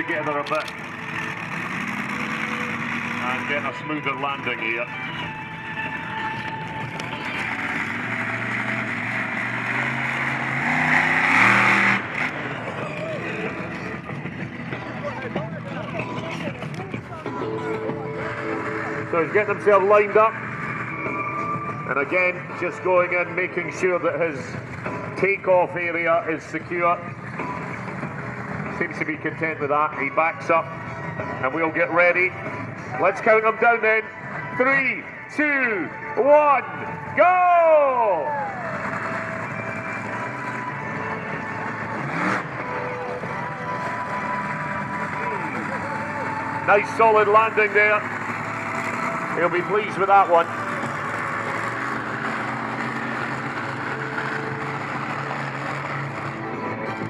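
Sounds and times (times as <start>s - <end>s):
crowd noise: 0.0s - 57.0s
distant monster truck engine: 0.0s - 57.0s.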